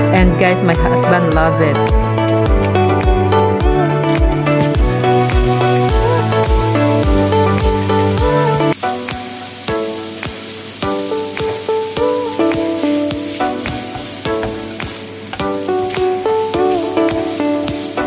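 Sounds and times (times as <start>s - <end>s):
background music: 0.0s - 18.0s
bacon sizzling in a pan: 4.4s - 18.0s
spatula stirring in pan: 4.6s - 18.0s.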